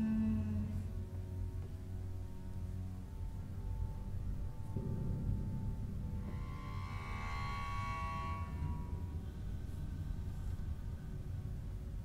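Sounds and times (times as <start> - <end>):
low rumbling drone: 0.0 - 12.0
high sustained tones: 3.3 - 11.6.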